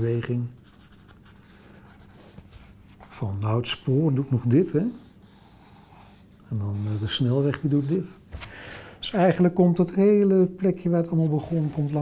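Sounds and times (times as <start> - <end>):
pencil scratching on paper: 0.6 - 2.4, 4.6 - 8.2.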